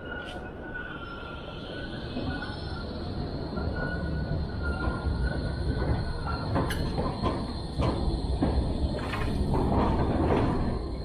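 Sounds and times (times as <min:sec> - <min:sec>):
tram wheels rumbling on rails: 0:00.0 - 0:11.0.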